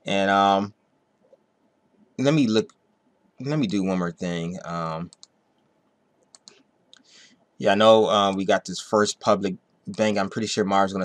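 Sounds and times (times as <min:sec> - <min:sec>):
computer mouse clicks: 0:05.0 - 0:05.4, 0:06.2 - 0:07.1.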